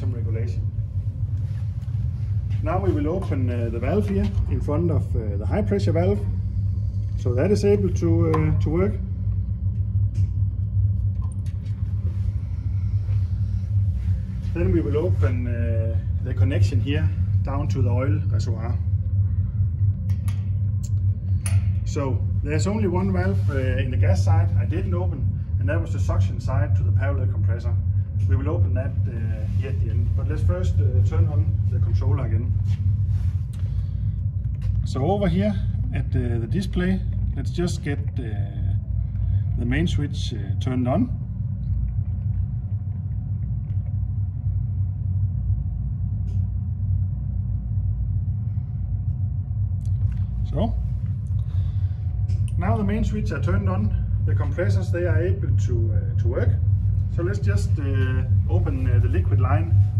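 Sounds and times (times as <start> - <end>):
low machine-room rumble: 0.0 - 59.9
steady low hum: 0.0 - 59.9.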